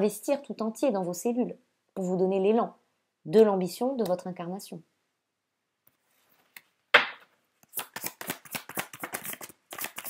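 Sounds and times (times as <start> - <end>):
cards being shuffled: 6.2 - 10.0.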